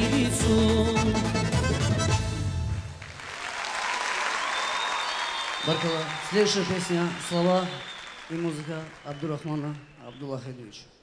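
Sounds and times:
live band playing: 0.0 - 3.2
audience applause: 3.0 - 10.4.

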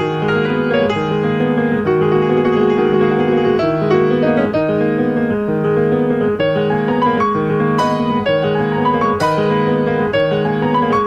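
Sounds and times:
piano notes and chords: 0.0 - 11.0.

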